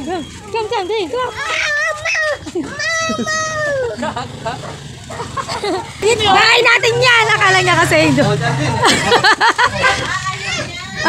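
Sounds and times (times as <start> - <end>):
toddler whining cry: 1.3 - 4.0.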